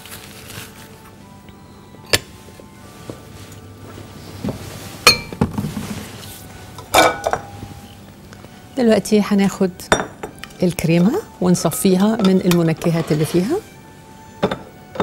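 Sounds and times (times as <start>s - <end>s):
quiet background music: 0.0s - 15.0s
glass bowls clinking: 5.0s - 5.5s, 6.8s - 8.0s, 9.9s - 13.4s, 14.4s - 15.0s.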